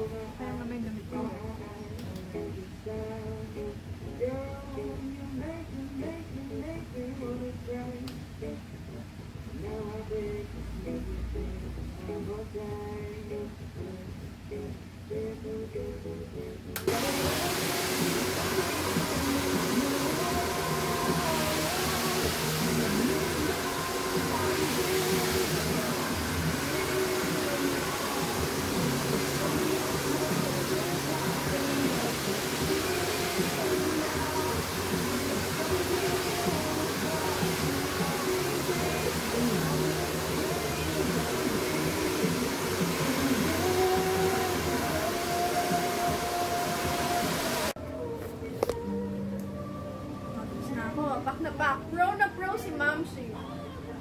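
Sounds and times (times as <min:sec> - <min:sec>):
hair dryer blowing: 0:16.9 - 0:47.8.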